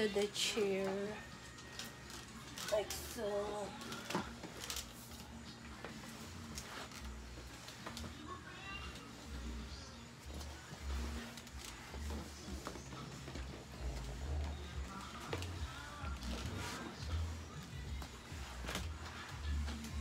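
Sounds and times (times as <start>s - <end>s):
faint background music: 0.0s - 20.0s
mop swishing over floor: 0.0s - 20.0s.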